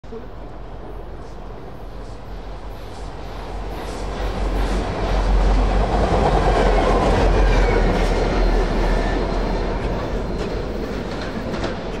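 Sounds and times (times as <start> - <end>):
diesel locomotive engine drone: 0.1 - 12.0
wheel and rail rumble: 0.1 - 12.0.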